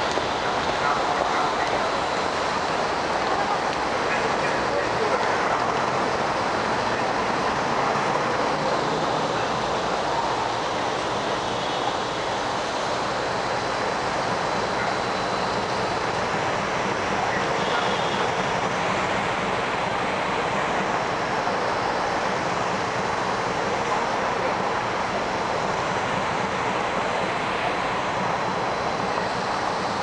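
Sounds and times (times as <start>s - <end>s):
city traffic: 0.0s - 30.0s.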